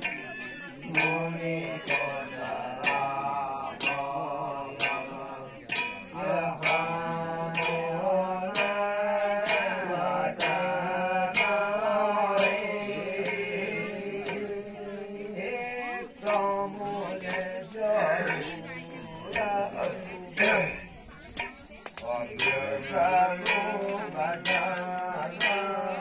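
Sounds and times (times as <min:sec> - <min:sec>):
sharp percussion strikes: 0:00.0 - 0:26.0.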